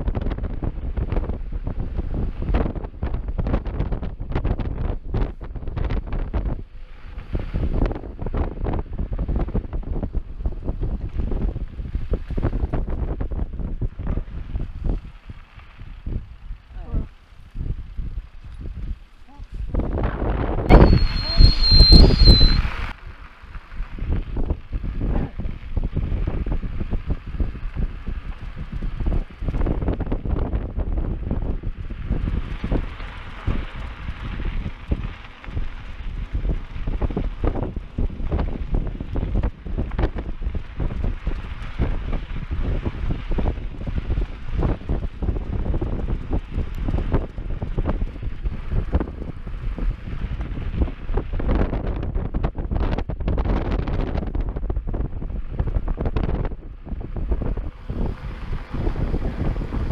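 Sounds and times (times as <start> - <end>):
mountain bike on dirt trail: 0.0 - 59.9
wind buffeting microphone: 0.0 - 59.9
high-pitched whistle: 20.7 - 22.8.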